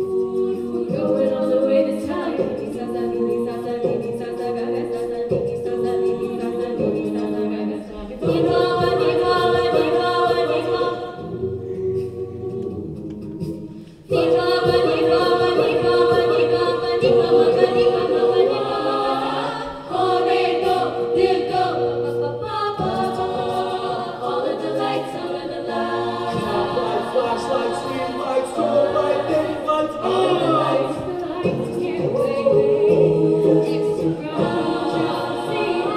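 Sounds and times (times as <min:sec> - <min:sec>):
a cappella group singing: 0:00.0 - 0:35.9.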